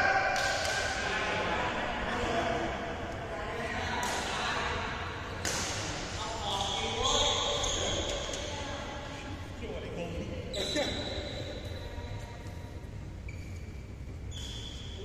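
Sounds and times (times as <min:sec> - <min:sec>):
players' voices: 0:00.0 - 0:13.0
rackets hitting shuttlecock: 0:00.2 - 0:01.1, 0:05.4 - 0:06.1.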